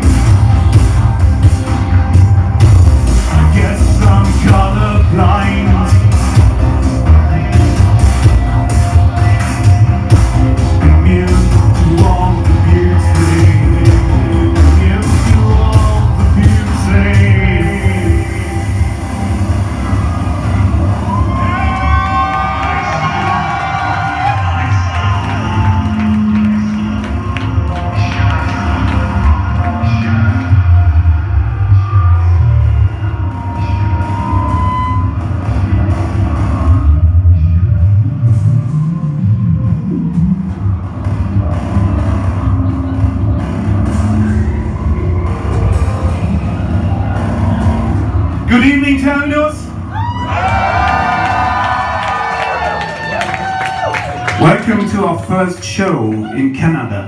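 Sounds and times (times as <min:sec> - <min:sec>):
live synthpop band: 0:00.0 - 0:57.0
man singing: 0:03.2 - 0:06.4, 0:10.7 - 0:18.9.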